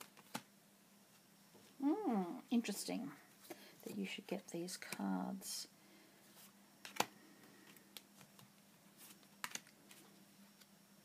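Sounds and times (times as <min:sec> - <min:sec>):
cards clicking and tapping: 0:00.0 - 0:00.5, 0:06.8 - 0:08.5, 0:09.1 - 0:10.0.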